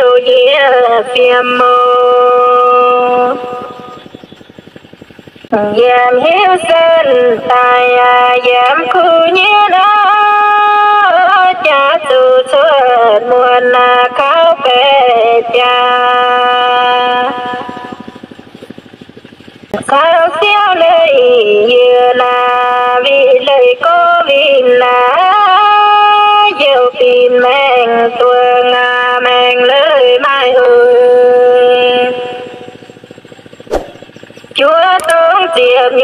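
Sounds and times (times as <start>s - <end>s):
person singing long notes: 0.0s - 3.9s, 5.5s - 18.2s, 19.8s - 32.7s
fast low pulsing: 0.0s - 36.0s
single click: 33.7s - 34.0s, 35.0s - 35.2s.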